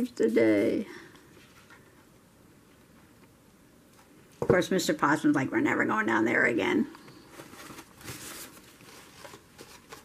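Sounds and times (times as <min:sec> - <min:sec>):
paper rustling and rubbing: 0:07.3 - 0:10.0.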